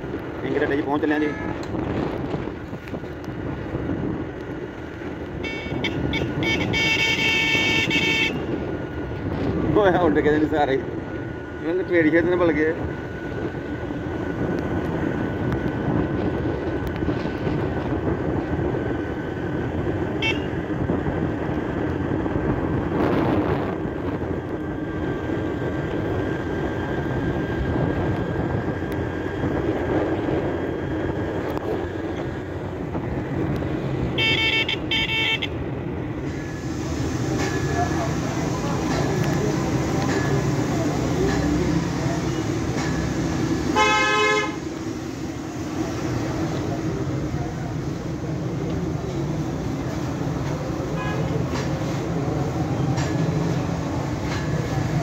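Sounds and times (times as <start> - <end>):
vehicle engine road and wind noise: 0.0 - 55.0.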